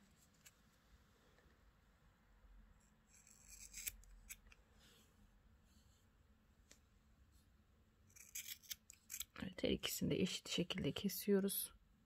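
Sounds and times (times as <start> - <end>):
scissors handling: 8.2 - 9.4.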